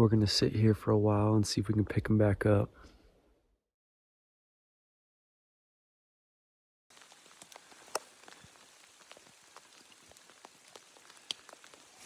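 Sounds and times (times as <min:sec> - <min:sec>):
raindrops ticking close by: 0:06.9 - 0:12.0
steady rain falling: 0:06.9 - 0:12.0.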